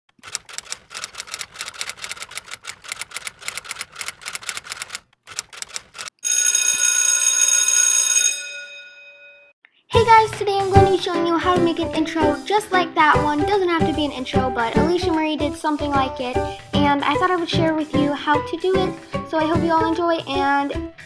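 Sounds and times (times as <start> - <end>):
typewriter bell ding: 6.2 - 9.5.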